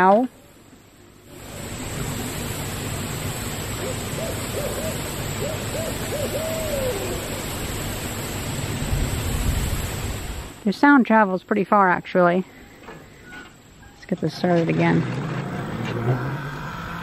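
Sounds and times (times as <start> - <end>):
steady background hiss: 0.0 - 17.0
distant owl hooting: 3.6 - 8.2.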